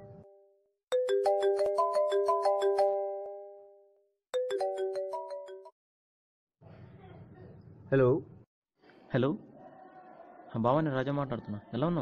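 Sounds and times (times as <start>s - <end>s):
mobile phone ringtone: 0.9s - 5.8s.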